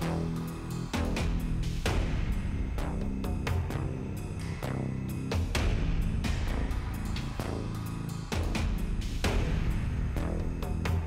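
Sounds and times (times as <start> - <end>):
low bass music: 0.0 - 11.0.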